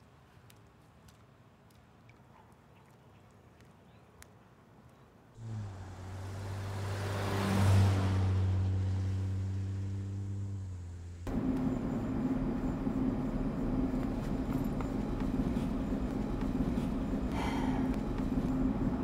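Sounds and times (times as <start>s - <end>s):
vehicle driving past: 5.4s - 14.9s
engine and road noise in cab: 5.4s - 19.0s.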